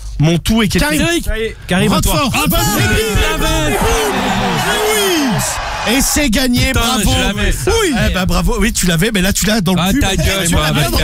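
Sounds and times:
men calling out excitedly: 1.8s - 7.9s.

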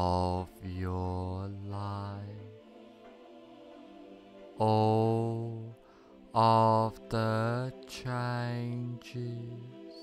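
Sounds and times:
man chanting a drawn-out word: 0.0s - 2.6s, 4.6s - 10.0s.

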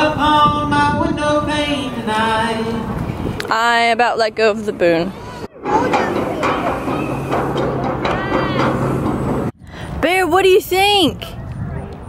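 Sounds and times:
steady low hum: 4.8s - 10.1s
stroller wheels rumbling on planks: 5.6s - 9.6s.

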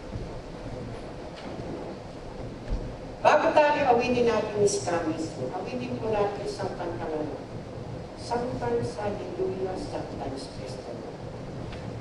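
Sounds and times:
low rumbling hall noise: 0.0s - 12.0s
soft low thump: 0.8s - 3.0s.

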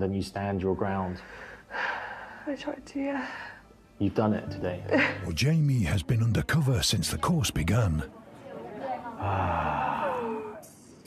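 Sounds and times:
person sighing: 9.2s - 10.6s.

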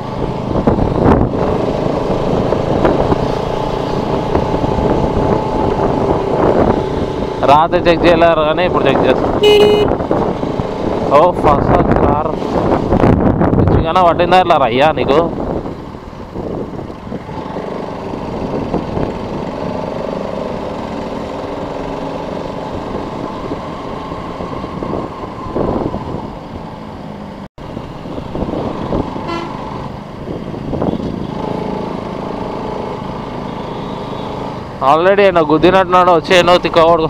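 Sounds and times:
motorcycle engine running: 0.0s - 8.6s, 9.3s - 11.4s, 15.7s - 24.9s
vehicle horn tooting: 9.4s - 10.0s, 29.2s - 29.6s.

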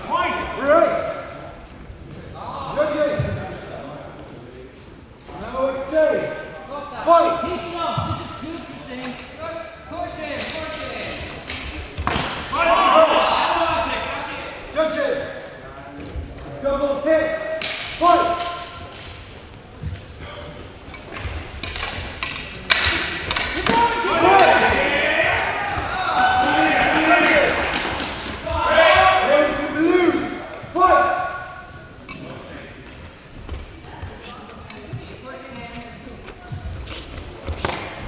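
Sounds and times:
voices in echoing hall: 0.0s - 38.0s
swords and bucklers clashing: 21.1s - 24.7s.

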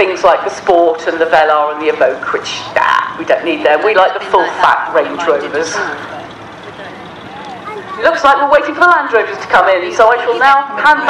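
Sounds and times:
faint distant voices: 0.0s - 11.0s
outdoor background noise: 0.0s - 11.0s.

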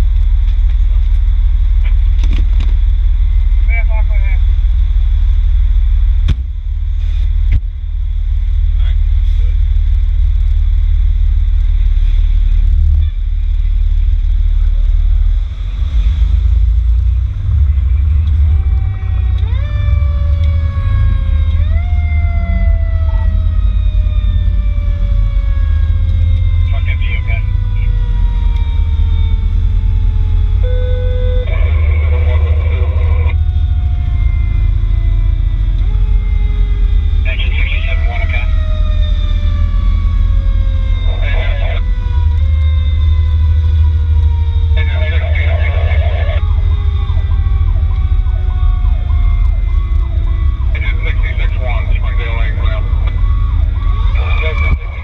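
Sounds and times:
truck engine rumble: 0.0s - 55.0s
wailing siren: 12.8s - 55.0s
harsh siren bursts: 18.4s - 55.0s.

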